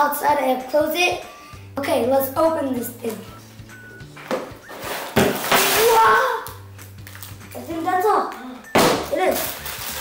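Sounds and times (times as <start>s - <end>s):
plastic bags rustling: 9.2s - 10.0s.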